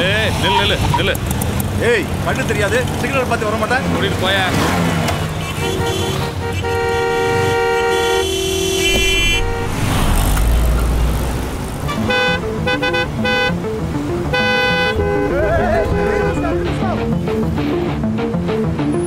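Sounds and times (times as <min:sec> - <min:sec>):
car horns honking: 0:00.3 - 0:01.2, 0:04.6 - 0:17.5
low engine rumble: 0:14.8 - 0:17.5.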